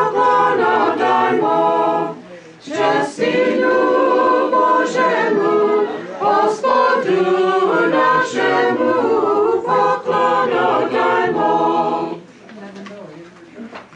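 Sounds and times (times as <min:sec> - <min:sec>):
choir singing a cappella: 0:00.0 - 0:12.3.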